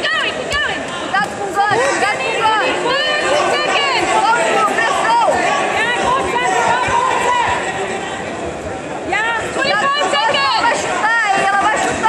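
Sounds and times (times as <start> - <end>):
people shouting: 0.0 - 8.2, 9.1 - 12.0
crowd chatter: 0.0 - 12.0.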